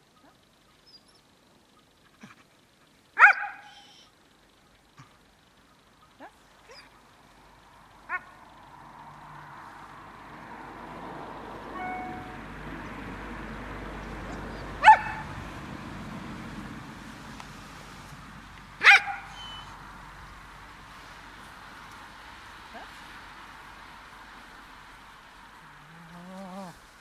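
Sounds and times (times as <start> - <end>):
dog yelping: 3.2 - 4.1, 6.1 - 7.0, 8.1 - 8.4, 14.5 - 15.3, 18.8 - 19.8.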